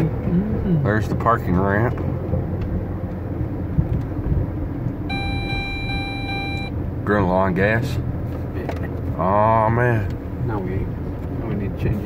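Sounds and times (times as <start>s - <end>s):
car driving rumble: 0.0s - 12.0s
phone ringing: 5.1s - 6.7s.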